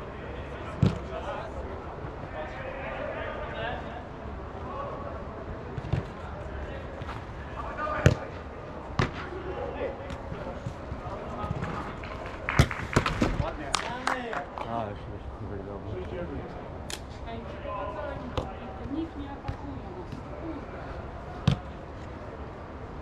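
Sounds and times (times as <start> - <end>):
football being kicked: 8.0 - 8.3, 9.0 - 9.3, 21.4 - 21.7.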